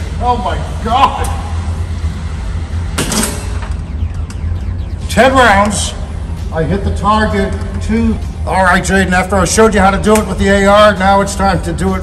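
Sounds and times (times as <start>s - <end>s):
motorised target carrier whine: 0.0s - 11.8s
constant low hum: 0.0s - 12.0s.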